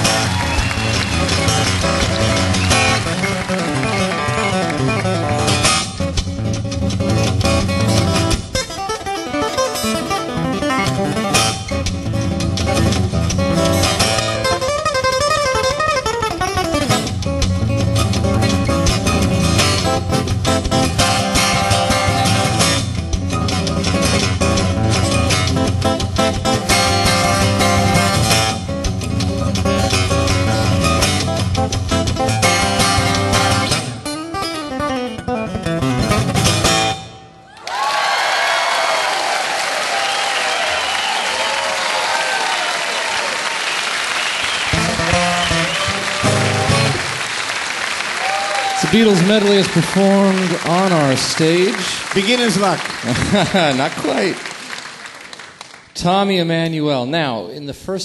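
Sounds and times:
fingerstyle acoustic guitar: 0.0 - 37.4, 44.7 - 47.2.

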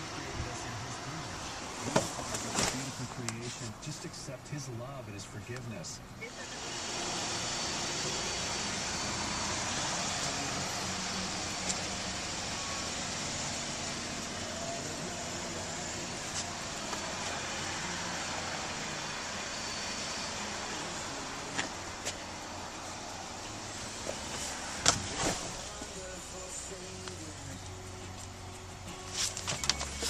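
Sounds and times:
car cabin hum and hiss: 0.0 - 30.0.

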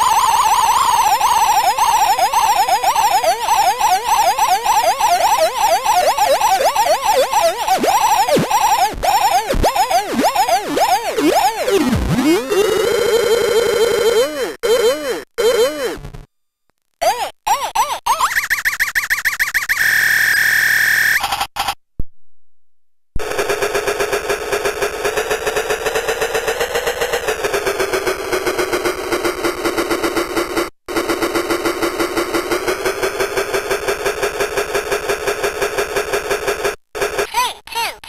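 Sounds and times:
toy electronic voice held tone: 0.0 - 16.0, 37.0 - 38.0
fast machine-gun stutter: 0.1 - 13.0.

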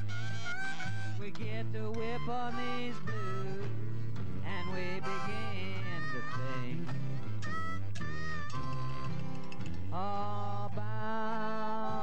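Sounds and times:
harmonica bending notes: 0.0 - 12.0
jug bass: 0.0 - 12.0
strummed acoustic guitars: 0.0 - 12.0.

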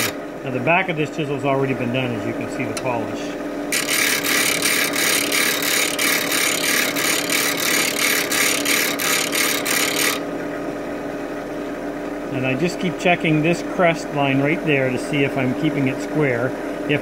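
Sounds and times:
bench grinder motor hum: 0.0 - 0.2, 3.7 - 10.3
chisel grinding hiss: 3.7 - 10.2.

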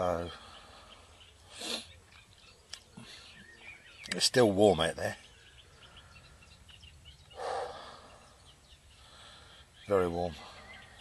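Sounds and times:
faint bird chirps: 0.0 - 11.0
wind rustling in trees: 0.0 - 11.0.

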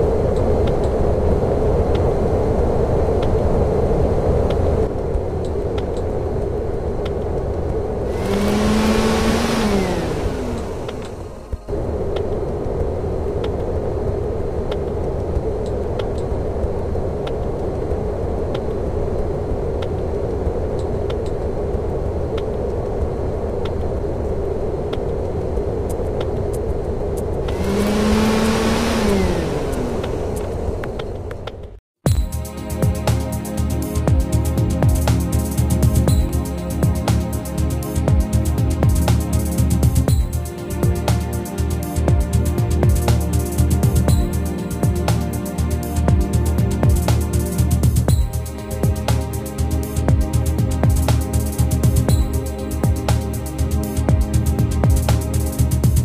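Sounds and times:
car engine running: 7.5 - 11.9, 27.3 - 56.0
car passing by: 8.0 - 11.8, 27.5 - 31.3.

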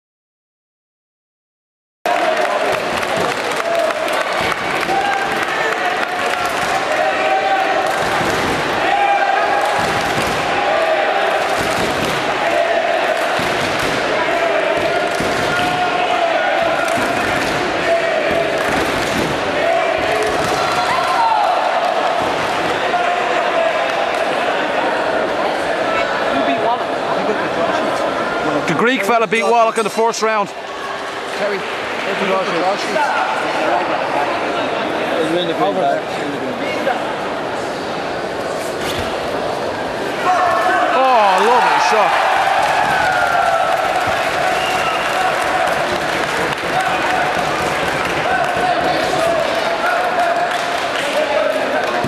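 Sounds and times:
crowd voices and shouts echoing: 2.1 - 52.0.

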